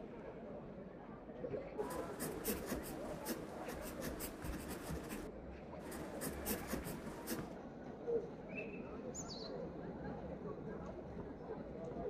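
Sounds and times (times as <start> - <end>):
pen scratching on paper: 1.8 - 7.5.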